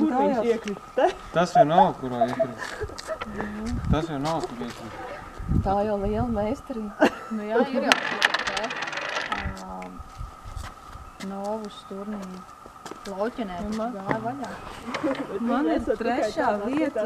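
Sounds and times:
puck rattling on wooden board: 0:07.8 - 0:09.6.

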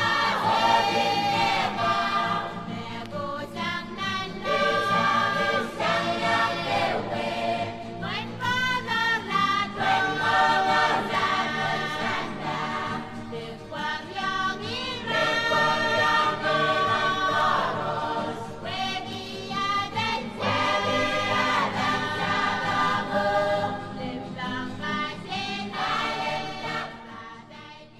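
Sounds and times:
voices singing together: 0:00.0 - 0:27.9.

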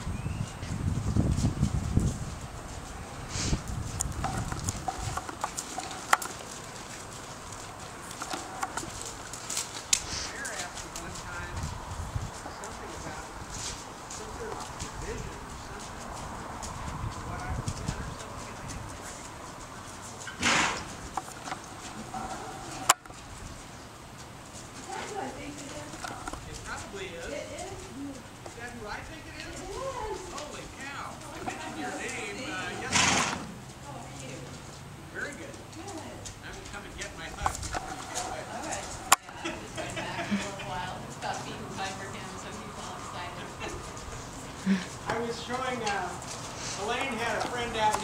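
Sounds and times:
horse hoofbeats on sand: 0:00.0 - 0:27.9, 0:35.3 - 0:48.0.

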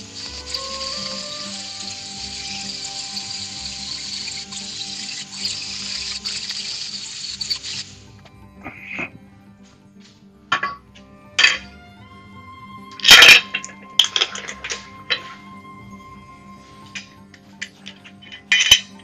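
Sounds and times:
angle grinder grinding steel: 0:00.0 - 0:08.1.

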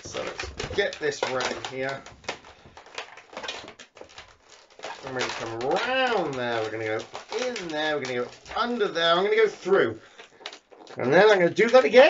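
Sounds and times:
balloons rubbing and creaking: 0:00.0 - 0:12.0.

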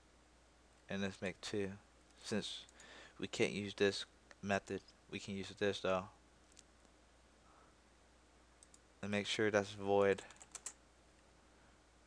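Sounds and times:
faint low hum: 0:00.0 - 0:12.0
computer mouse click: 0:08.6 - 0:08.8, 0:10.2 - 0:10.8.

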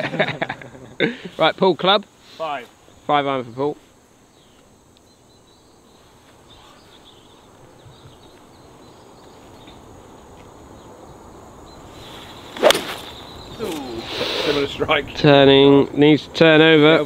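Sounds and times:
faint outdoor background: 0:00.0 - 0:17.0
golf club striking ball: 0:12.6 - 0:13.1.

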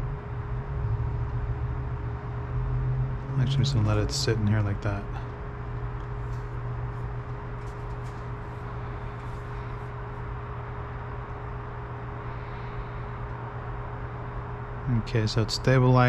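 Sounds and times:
low background hum: 0:00.0 - 0:16.0
thin constant tone: 0:00.0 - 0:16.0.

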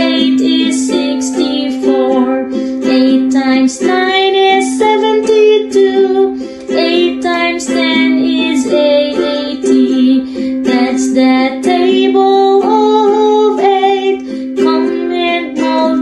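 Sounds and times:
person singing children's song: 0:00.0 - 0:16.0
plucked-string backing: 0:00.0 - 0:16.0.

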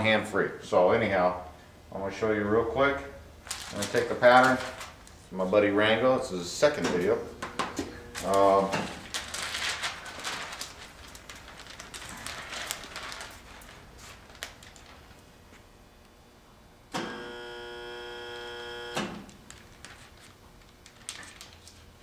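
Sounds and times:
steady pitched hum: 0:00.0 - 0:19.0
plastic film crinkling: 0:03.4 - 0:05.3, 0:08.1 - 0:15.3, 0:19.2 - 0:22.0.

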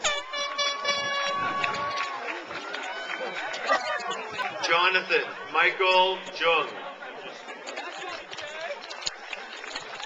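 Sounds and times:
air horn blast: 0:00.0 - 0:01.8
crowd chatter: 0:00.0 - 0:10.0.

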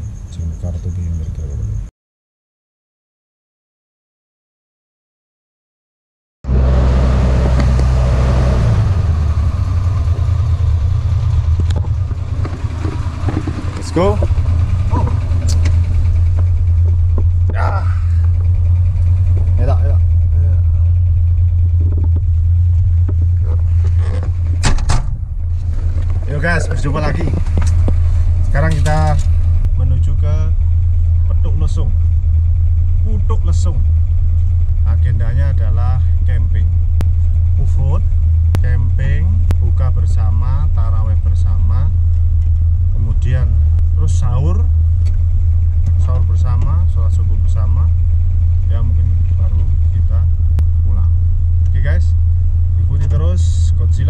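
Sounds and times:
vehicle engine running: 0:00.0 - 0:01.9, 0:06.4 - 0:54.0.

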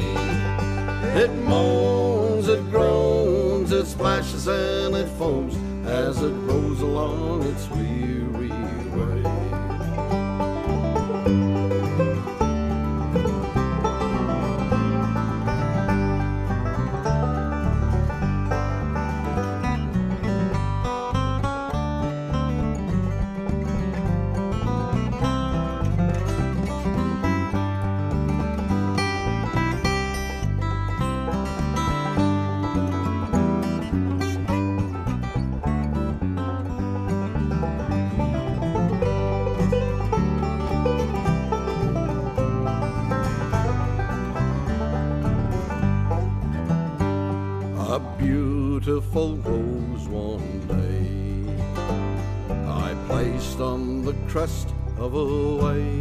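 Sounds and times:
acoustic guitar: 0:00.0 - 0:56.0
banjo: 0:00.0 - 0:56.0
bass guitar: 0:00.0 - 0:56.0.

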